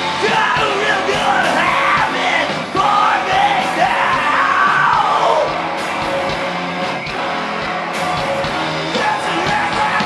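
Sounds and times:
live rock band playing: 0:00.0 - 0:10.0
person singing: 0:00.2 - 0:05.6, 0:08.9 - 0:10.0.

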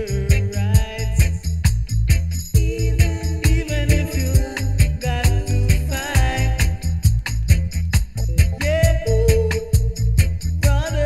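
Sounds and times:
reggae music: 0:00.0 - 0:11.0.

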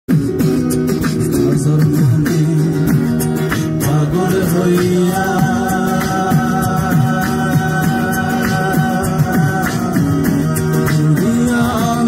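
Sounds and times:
acoustic guitar: 0:00.1 - 0:12.0
person singing into microphone: 0:00.4 - 0:12.0.

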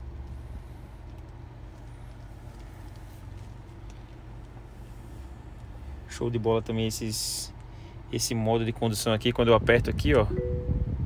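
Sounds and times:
car engine idling: 0:00.0 - 0:08.3
air conditioning running: 0:00.0 - 0:11.0.

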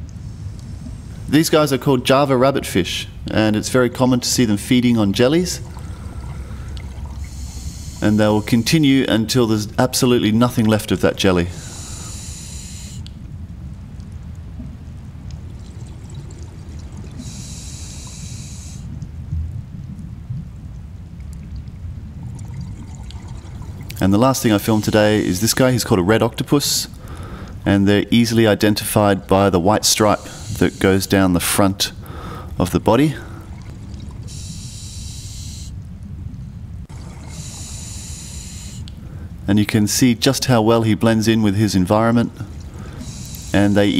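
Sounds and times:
low rumble of water: 0:00.0 - 0:43.9
diver breathing through regulator: 0:05.6 - 0:08.8, 0:11.5 - 0:13.1, 0:17.1 - 0:19.0, 0:27.0 - 0:27.6, 0:30.2 - 0:31.1, 0:32.0 - 0:32.6, 0:34.2 - 0:35.8, 0:37.1 - 0:39.4, 0:42.4 - 0:43.9.

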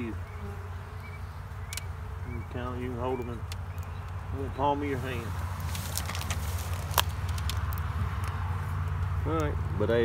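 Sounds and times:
low rumble of vehicle engines: 0:00.0 - 0:10.0.

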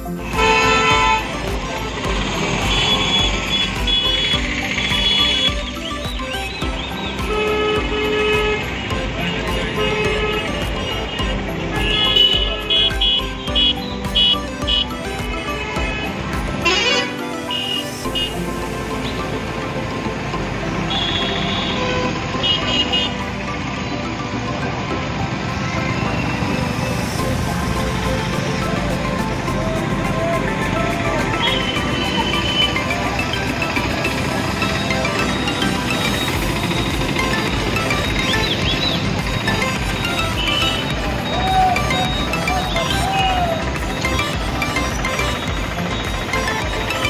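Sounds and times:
motorcycles passing: 0:00.0 - 0:47.0
traffic engine rumble: 0:00.0 - 0:47.0
vehicle horns honking: 0:00.2 - 0:05.8, 0:06.9 - 0:18.4, 0:20.8 - 0:23.3, 0:31.4 - 0:43.2.

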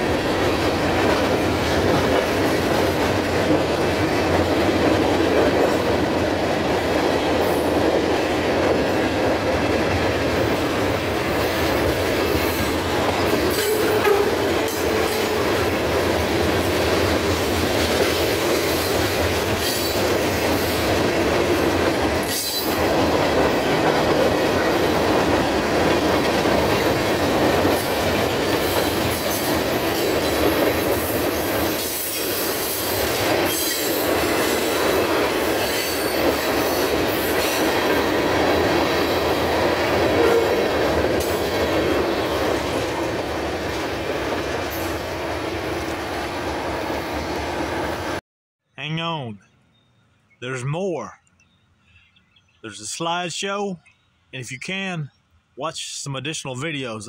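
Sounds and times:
train wheels rumbling on rails: 0:00.0 - 0:48.2.

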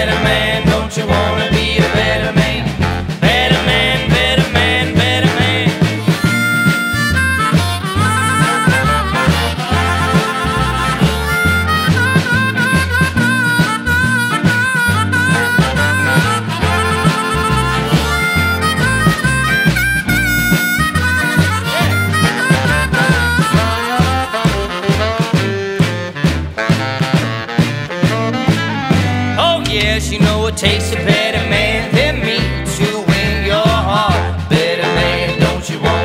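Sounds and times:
trumpet: 0:00.0 - 0:32.4, 0:33.9 - 0:36.0
baritone saxophone: 0:00.0 - 0:36.0
electric guitar: 0:00.0 - 0:36.0
harmonica lead: 0:00.0 - 0:36.0
upright bass line: 0:00.0 - 0:36.0.

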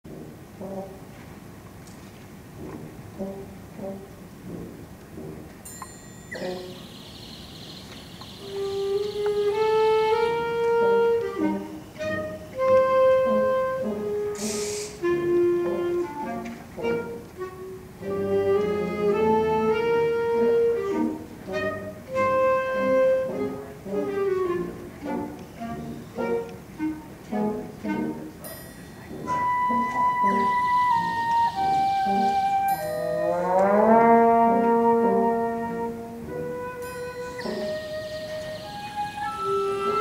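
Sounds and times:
wind band playing a march: 0:00.1 - 0:40.0.

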